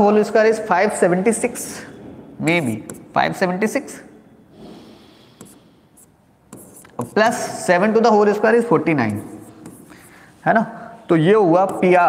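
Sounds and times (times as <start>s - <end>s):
stylus tapping on screen: 2.5s - 3.1s, 5.4s - 7.3s, 9.0s - 10.0s, 11.6s - 12.0s.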